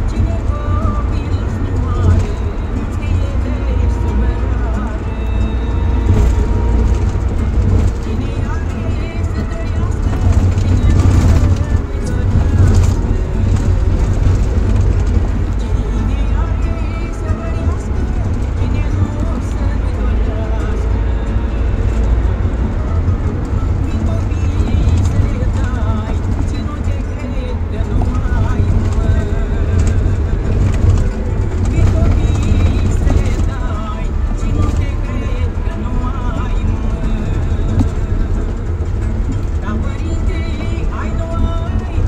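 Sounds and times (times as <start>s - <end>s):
engine and road rumble: 0.0s - 42.0s
faint music: 0.0s - 42.0s
indistinct voices: 0.0s - 42.0s.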